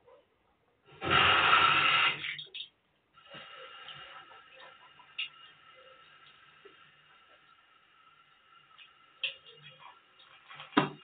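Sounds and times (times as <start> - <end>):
water running from a tap: 0.9 - 11.0.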